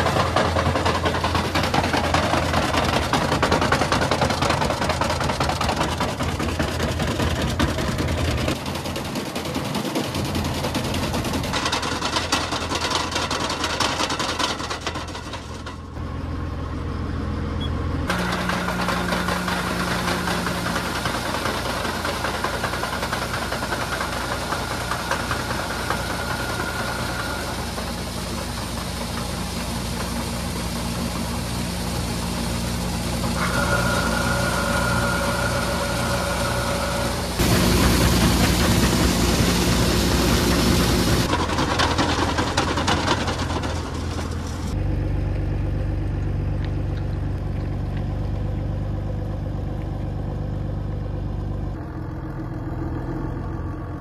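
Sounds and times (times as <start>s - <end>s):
farm machinery engine running: 0.0s - 54.0s.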